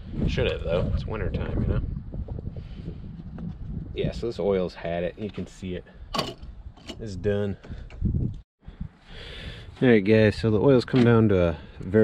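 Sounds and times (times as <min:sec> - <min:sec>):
wind buffeting microphone: 0:00.0 - 0:05.0, 0:05.6 - 0:10.6.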